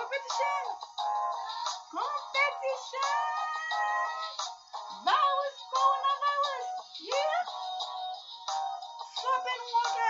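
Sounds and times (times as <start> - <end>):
woman singing unaccompanied: 0.0 - 0.8, 1.5 - 4.4, 5.0 - 7.9, 9.1 - 10.0.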